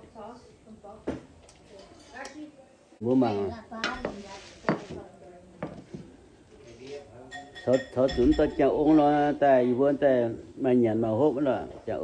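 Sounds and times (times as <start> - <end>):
tableware clinking: 7.2 - 9.1.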